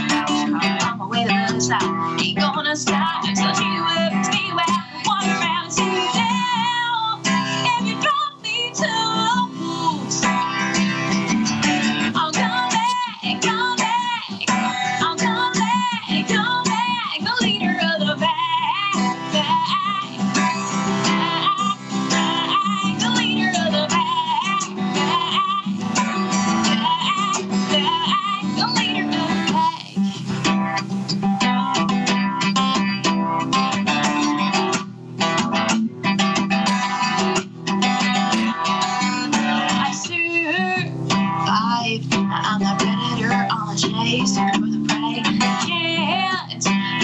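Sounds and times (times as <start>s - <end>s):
woman singing with vibrato: 0.0s - 30.8s, 31.4s - 32.0s, 38.1s - 47.0s
strummed acoustic guitar: 0.0s - 47.0s.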